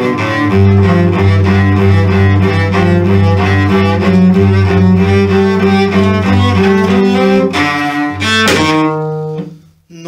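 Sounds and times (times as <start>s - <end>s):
cello being bowed: 0.0s - 9.7s
cello string snapping: 8.4s - 8.8s.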